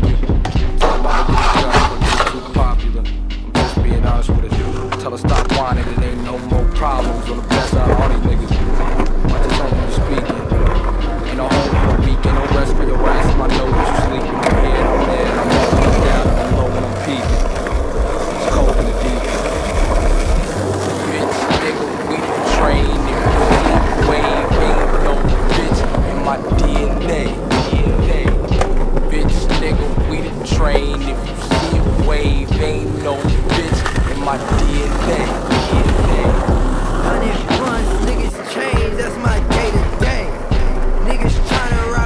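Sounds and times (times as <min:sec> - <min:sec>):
skateboard wheels rolling on concrete: 0:00.0 - 0:02.9, 0:03.5 - 0:42.0
hip-hop beat: 0:00.0 - 0:42.0.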